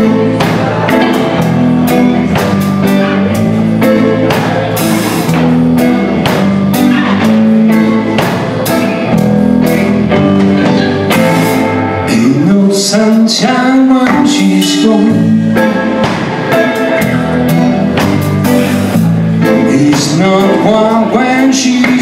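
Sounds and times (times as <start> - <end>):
guitar bending notes: 0.0 - 22.0
live blues band: 0.0 - 22.0.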